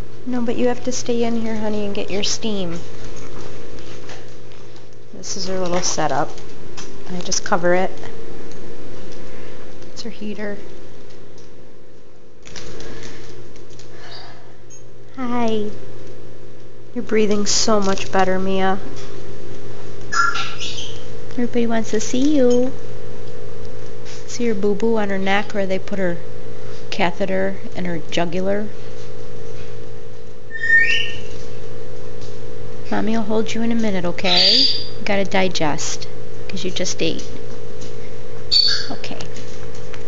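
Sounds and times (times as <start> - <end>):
steam vaporizer humming: 0.0 - 40.0
puppy high squeaky call: 30.5 - 31.3.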